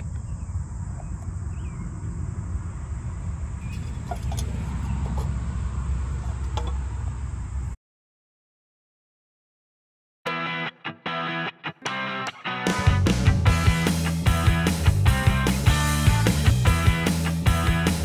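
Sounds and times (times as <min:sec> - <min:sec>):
low outdoor rumble: 0:00.0 - 0:07.8.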